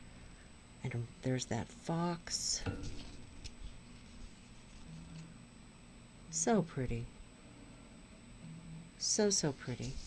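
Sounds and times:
high constant whine: 0.0s - 10.0s.

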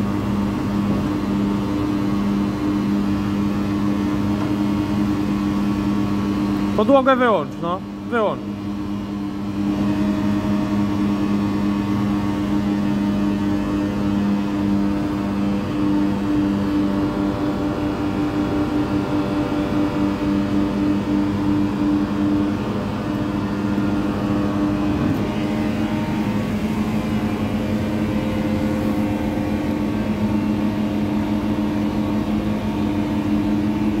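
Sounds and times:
machine hum with whine: 0.0s - 34.0s.

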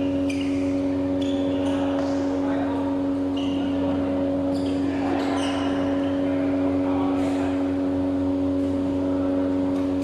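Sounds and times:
steady machine hum: 0.0s - 10.0s.

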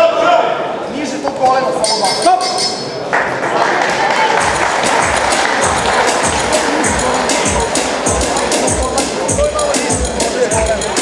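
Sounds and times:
crowd cheering and applause: 3.0s - 9.9s
music with thumping beat: 4.4s - 11.0s.

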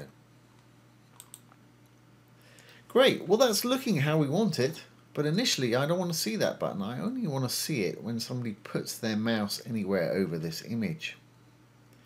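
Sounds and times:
low steady hum: 0.0s - 12.0s
computer mouse clicks: 0.6s - 1.6s.

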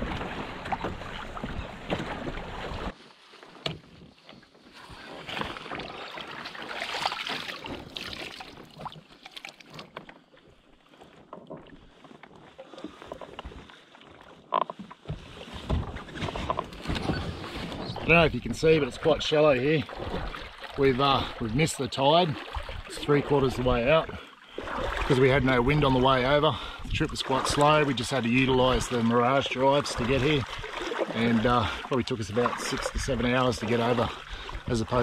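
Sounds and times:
water splashing against hull: 0.0s - 35.0s.

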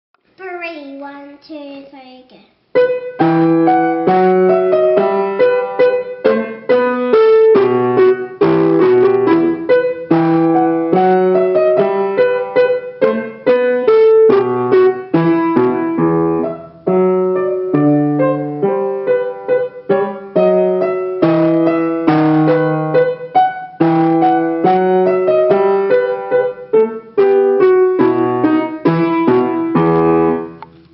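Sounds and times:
solo piano baroque dance: 2.7s - 30.9s.

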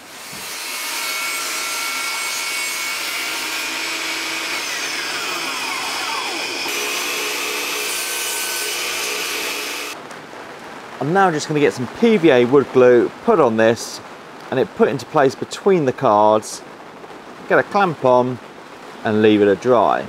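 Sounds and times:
table saw cutting wood: 0.0s - 10.0s.

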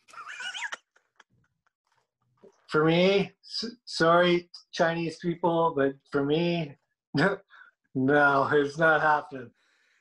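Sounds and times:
high-pitched laughter: 0.0s - 1.4s.

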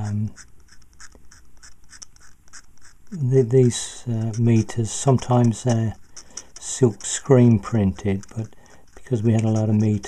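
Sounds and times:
scalpel blade scraping paint: 0.4s - 10.0s.

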